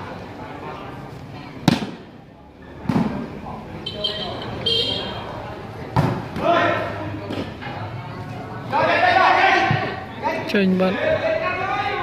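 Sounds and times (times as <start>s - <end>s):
spectators murmuring: 0.0s - 12.0s
volleyball smack: 1.6s - 2.0s.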